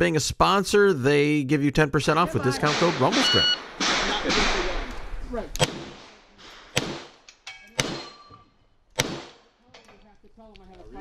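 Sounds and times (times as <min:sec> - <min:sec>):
pistol shots: 0:02.6 - 0:08.2, 0:09.0 - 0:09.5
metallic ringing of steel target: 0:02.7 - 0:04.8, 0:06.7 - 0:08.4.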